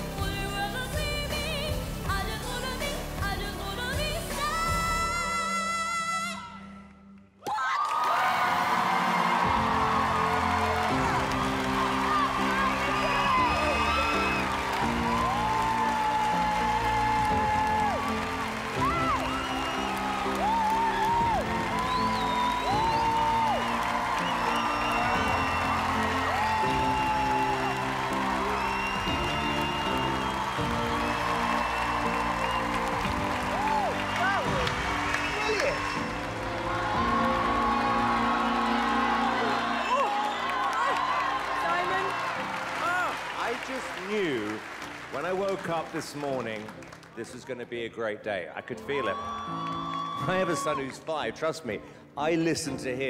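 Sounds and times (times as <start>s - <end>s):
background music with chords: 0.0s - 6.9s, 8.4s - 53.0s
audience applauding and cheering: 7.4s - 52.3s.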